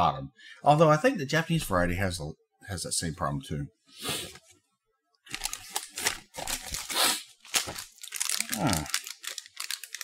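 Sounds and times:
plastic packaging crinkling: 5.3 - 10.0.

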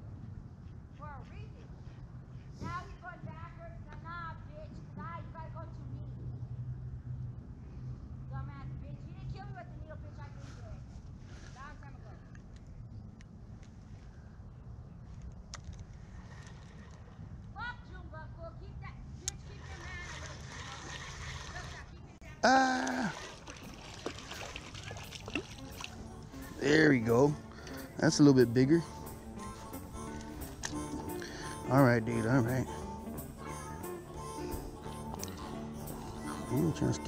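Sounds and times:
road traffic hum: 0.0 - 37.0.

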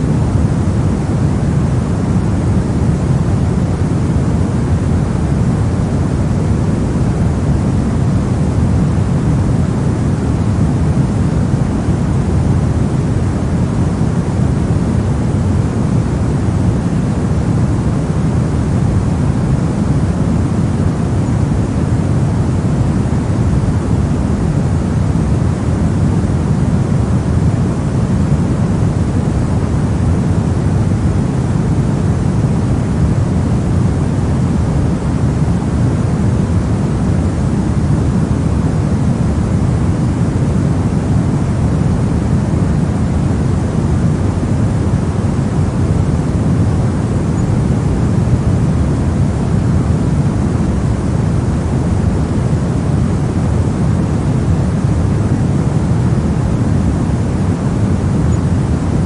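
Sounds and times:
pink noise hiss: 0.0 - 59.0.

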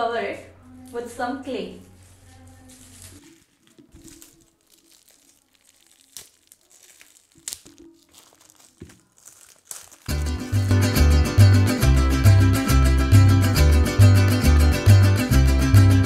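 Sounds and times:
plastic wrap crinkling: 0.6 - 11.2
guitar background music: 10.1 - 16.0.

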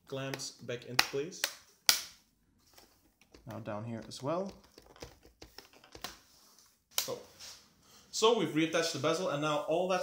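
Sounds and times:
plastic clicks: 2.8 - 6.2.

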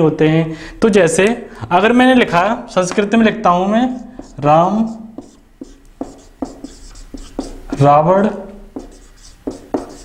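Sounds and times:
marker writing on whiteboard: 2.2 - 10.0
marker squeaky scratch: 2.3 - 3.2, 3.8 - 7.9, 8.7 - 10.0.

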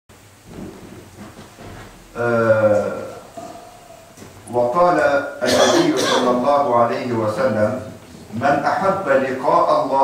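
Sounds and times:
recording noise hiss and rumble: 0.1 - 10.0
faint indistinct sounds: 0.5 - 6.7.

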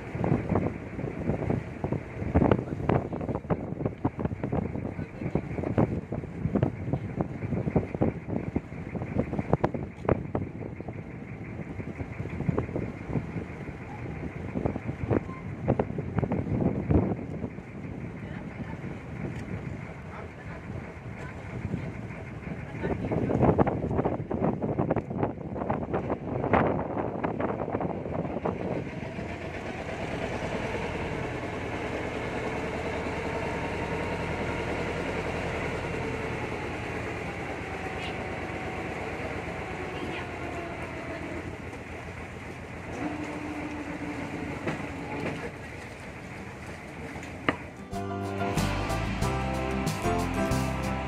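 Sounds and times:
boat engine running: 0.0 - 51.0
wind: 0.0 - 51.0
water noise: 28.6 - 51.0.

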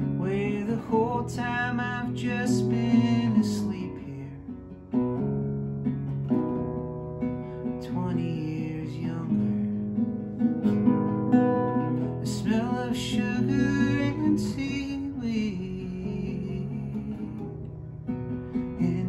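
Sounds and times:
classical guitar fingerstyle: 0.0 - 19.0.

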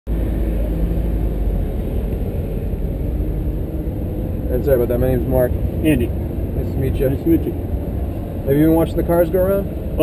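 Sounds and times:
car engine idling: 0.1 - 10.0.

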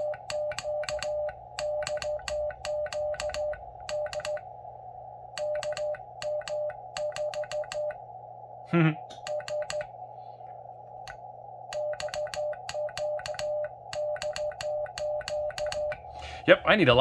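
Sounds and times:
morse code sidetone beeps: 0.0 - 4.4, 5.4 - 8.0, 11.8 - 16.0.

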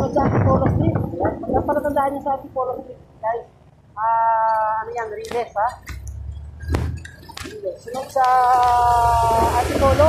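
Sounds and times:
vehicle rumble: 0.0 - 10.0.

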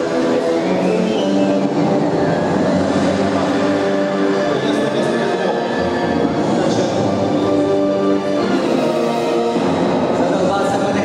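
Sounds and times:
rushing rumbling layer: 0.0 - 11.0
stage soundtrack music: 0.0 - 11.0.

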